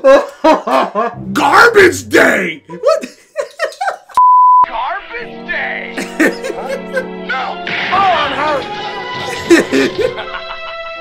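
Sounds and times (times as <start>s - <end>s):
film soundtrack music: 1.0s - 2.8s, 4.6s - 11.0s
speech: 1.3s - 3.1s
high-pitched censor bleep: 4.2s - 4.7s.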